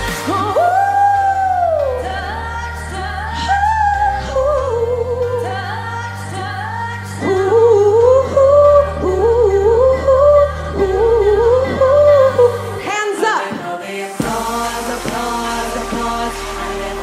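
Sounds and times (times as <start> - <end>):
pop song with female vocal: 0.0 - 17.0.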